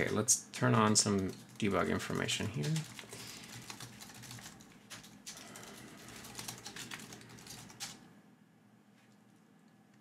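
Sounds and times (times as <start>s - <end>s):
computer keyboard typing: 0.0s - 8.1s.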